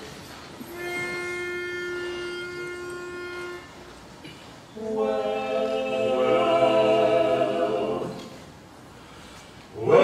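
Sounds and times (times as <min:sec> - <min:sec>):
pitch pipe steady tone: 0:00.6 - 0:06.2.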